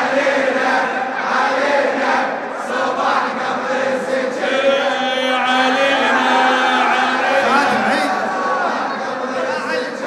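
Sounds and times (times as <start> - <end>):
men chanting: 0.0 - 9.4.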